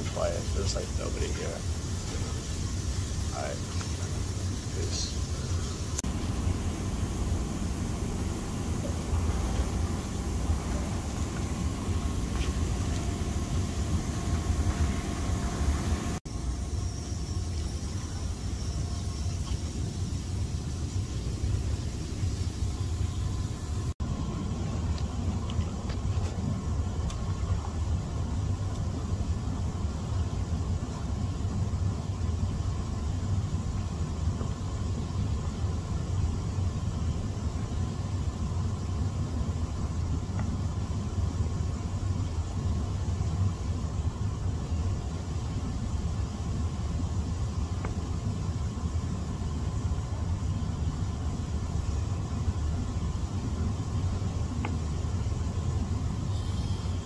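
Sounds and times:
jacuzzi jets bubbling: 0:00.0 - 0:16.3.

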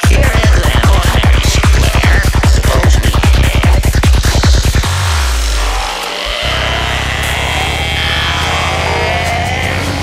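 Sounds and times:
pulsing synth bass: 0:00.0 - 0:10.0
sustained synth pad: 0:00.0 - 0:10.0.

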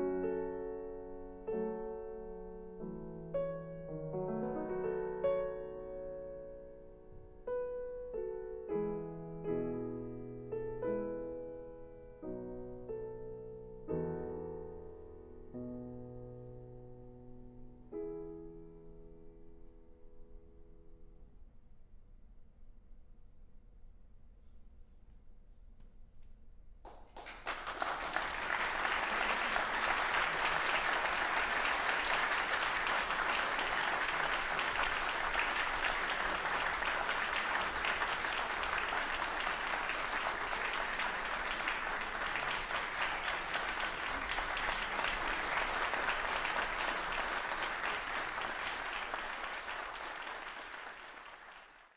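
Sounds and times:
audience applauding: 0:26.9 - 0:51.9.

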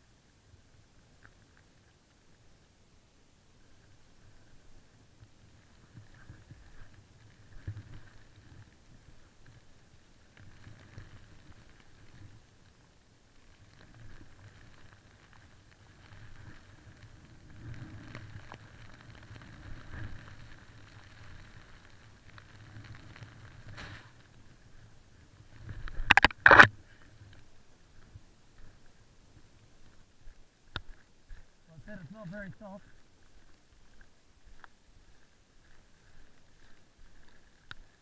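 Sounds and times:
snowboard rumble and hiss in snow: 0:00.0 - 0:38.0
small clicks: 0:25.6 - 0:27.5.

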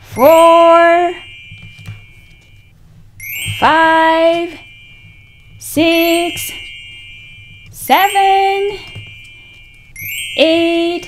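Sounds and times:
faint low room hum: 0:00.0 - 0:11.0
high shimmering sparkle tone: 0:00.0 - 0:11.0.

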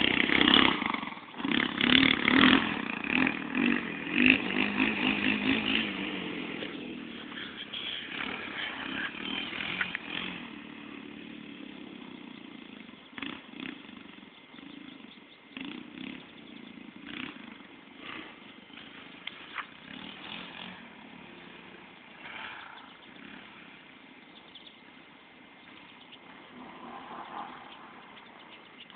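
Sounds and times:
dirt bike engine revving: 0:00.0 - 0:28.9.

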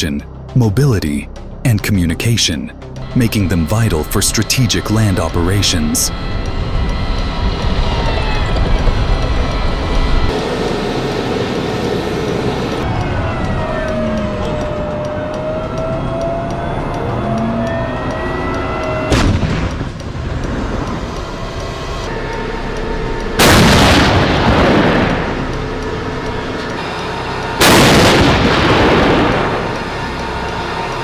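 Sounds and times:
tank engine and track noise: 0:00.0 - 0:31.0
tank gun blast: 0:19.1 - 0:19.9, 0:23.4 - 0:25.4, 0:27.6 - 0:29.7.

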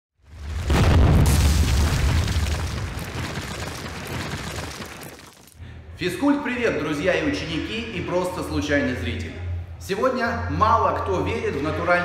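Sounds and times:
deep boom with rumbling tail: 0:00.3 - 0:03.8.

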